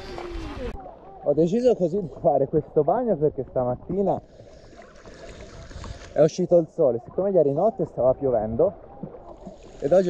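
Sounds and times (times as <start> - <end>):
sea water sloshing and lapping: 0.0 - 10.0.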